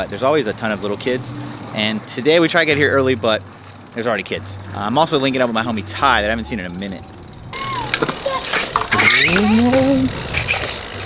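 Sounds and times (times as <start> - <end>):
bike tyres rolling on concrete: 1.8 - 11.0
person calling out: 9.1 - 10.2.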